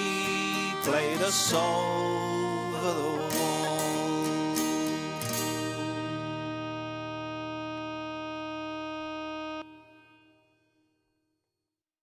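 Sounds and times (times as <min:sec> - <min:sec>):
bagpipes with drones: 0:00.0 - 0:10.4
acoustic guitar strumming: 0:00.0 - 0:10.7.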